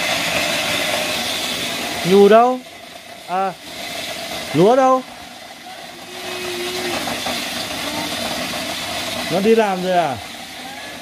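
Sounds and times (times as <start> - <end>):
corn grinding: 0.0 - 11.0.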